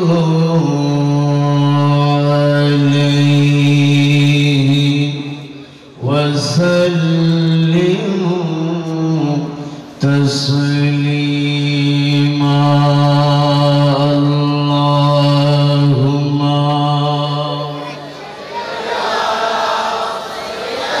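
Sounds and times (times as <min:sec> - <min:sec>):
man chanting through microphone: 0:00.0 - 0:18.3.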